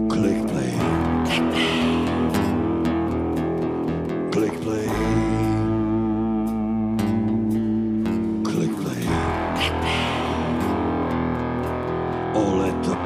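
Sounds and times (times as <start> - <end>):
acoustic guitar: 0.0 - 13.0
bass guitar: 0.0 - 13.0
electric guitar: 0.0 - 13.0.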